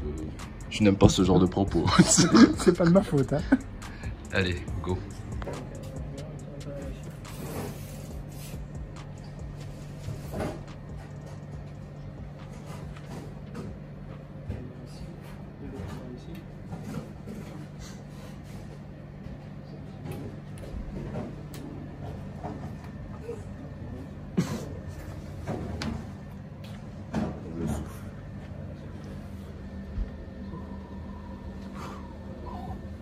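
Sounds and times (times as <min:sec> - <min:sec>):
air conditioner humming: 0:00.0 - 0:33.0.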